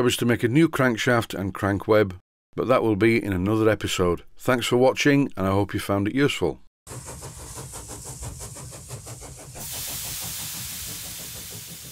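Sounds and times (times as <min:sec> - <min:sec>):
steam engine mechanical beat: 0:06.9 - 0:11.9
steam hissing: 0:06.9 - 0:11.9.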